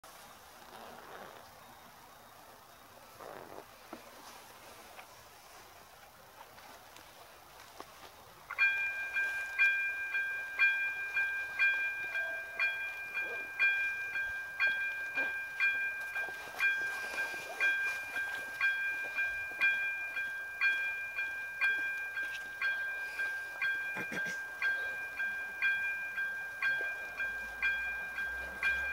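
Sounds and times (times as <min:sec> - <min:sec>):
level crossing warning bell: 0:08.5 - 0:28.9.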